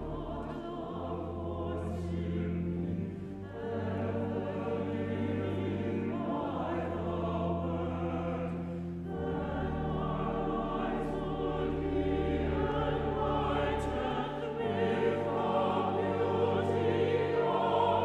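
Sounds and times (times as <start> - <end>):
church choir singing: 0.0 - 18.0.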